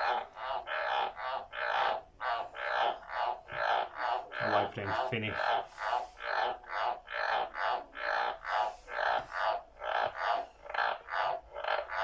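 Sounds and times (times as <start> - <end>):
frogs croaking: 0.0 - 12.0.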